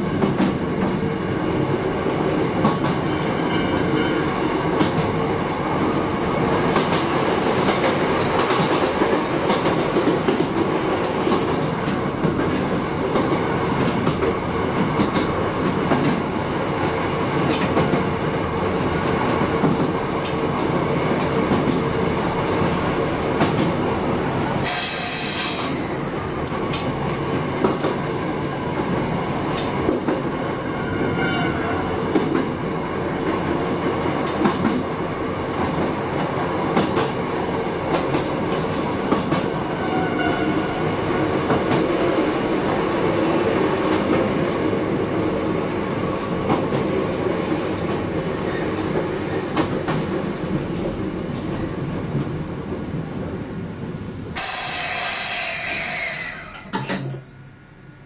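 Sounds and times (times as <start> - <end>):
train wheels rumbling on rail: 0.0 - 57.6
rail-joint clicks: 0.2 - 1.0, 6.7 - 16.2, 16.8 - 18.1, 19.6 - 20.4, 21.2 - 21.8, 24.6 - 27.0, 28.8 - 30.2, 37.9 - 39.5, 47.7 - 48.0, 54.4 - 57.3
short sharp high hiss: 24.6 - 25.7, 54.4 - 56.7.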